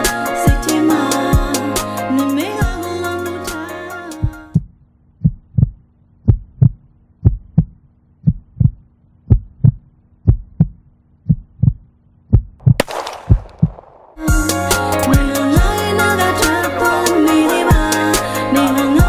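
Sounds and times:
heartbeat thumps: 4.2s - 14.5s.

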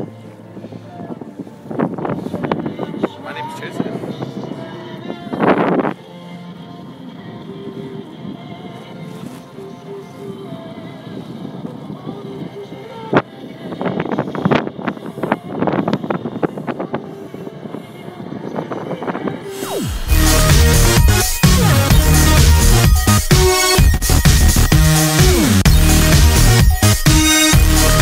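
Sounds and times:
wind buffeting microphone: 0.0s - 6.0s, 6.8s - 20.1s.

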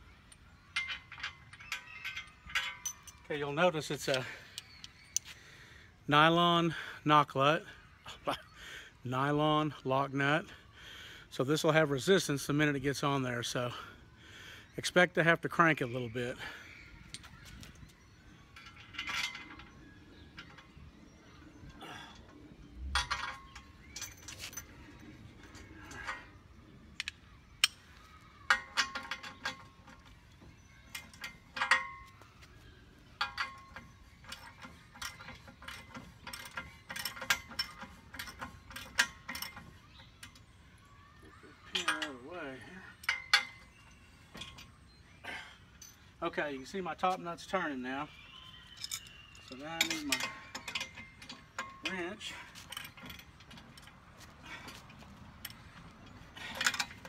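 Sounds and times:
metal clinks: 0.3s - 3.3s, 48.6s - 57.0s.

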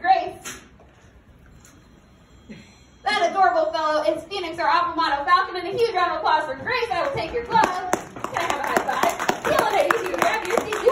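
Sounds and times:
voices: 3.1s - 10.9s
audience clapping: 7.0s - 10.9s.

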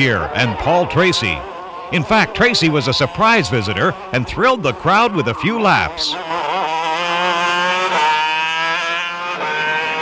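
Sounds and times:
go-kart engine running hard: 0.0s - 10.0s.

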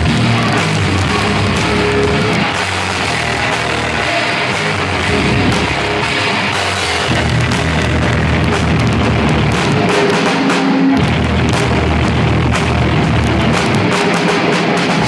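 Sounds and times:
drum kit: 0.0s - 15.0s
industrial rock band playing: 0.0s - 15.0s.

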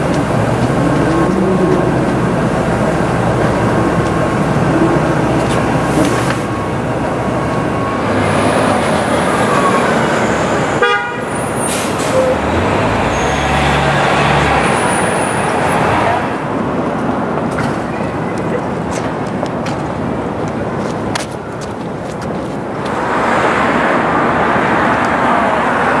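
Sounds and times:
bus passing: 0.0s - 26.0s
city street traffic: 0.0s - 26.0s
vehicle horn toot: 10.8s - 11.4s.

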